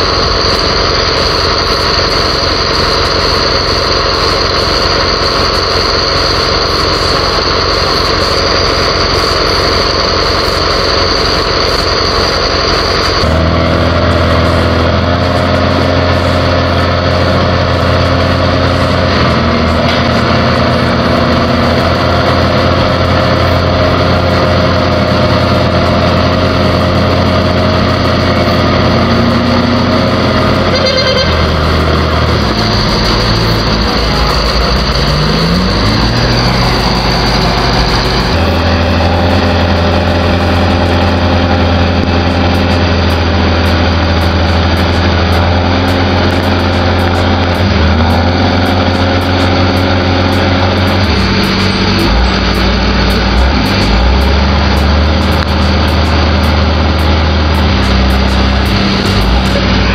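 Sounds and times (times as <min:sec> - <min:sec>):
engine revving: 0:00.0 - 0:59.9
heavy diesel engines droning: 0:00.0 - 0:59.9.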